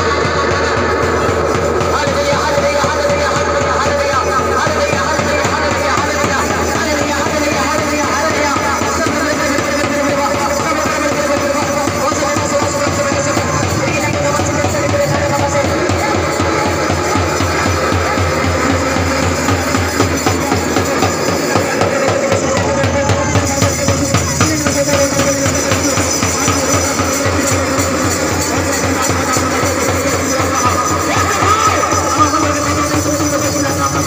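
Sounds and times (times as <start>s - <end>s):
worship music over loudspeaker: 0.0s - 34.0s.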